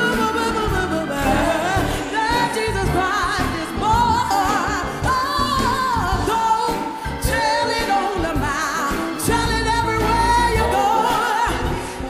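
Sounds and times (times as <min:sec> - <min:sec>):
instrumental backing: 0:00.0 - 0:12.0
women singing gospel: 0:00.0 - 0:12.0.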